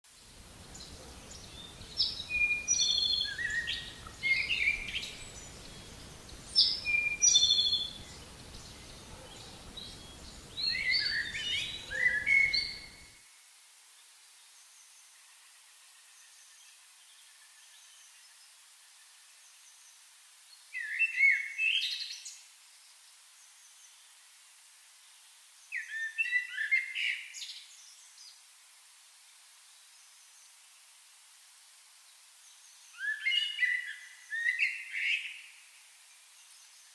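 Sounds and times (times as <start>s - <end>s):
low background noise: 0.0s - 36.9s
songbird chirping and trilling: 0.2s - 13.1s, 32.7s - 35.6s.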